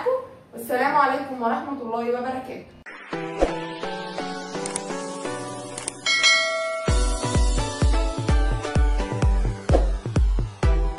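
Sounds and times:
light background music: 1.8 - 10.9
quick clicks: 4.6 - 4.9, 5.7 - 6.0
bright bell chime: 6.0 - 7.7.

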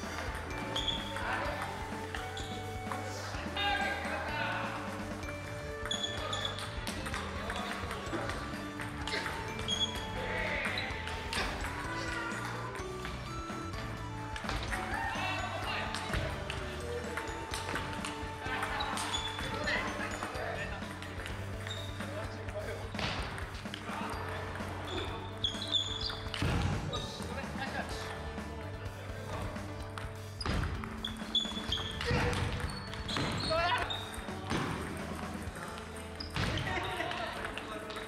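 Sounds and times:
table tennis ball hitting paddles: 0.0 - 3.3, 5.0 - 13.7, 14.3 - 28.4, 29.3 - 38.0
background music: 0.0 - 38.0.

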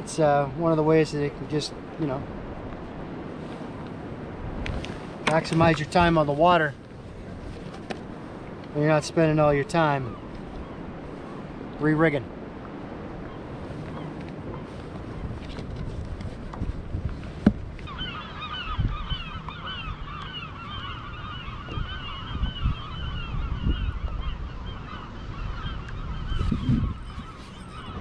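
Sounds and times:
low rumble of water: 0.0 - 28.0
wind: 0.0 - 28.0.

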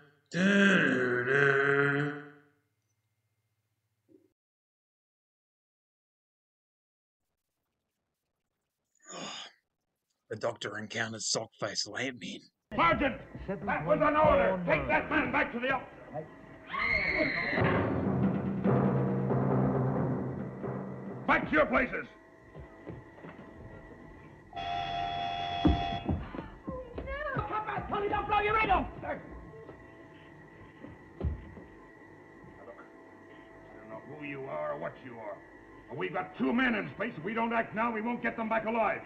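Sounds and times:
man sighing: 9.0 - 9.6
faint hum: 21.6 - 39.0.

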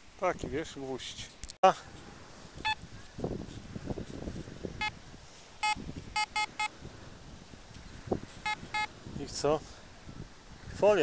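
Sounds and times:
metal detector beeping: 5.6 - 6.7, 8.4 - 8.9.

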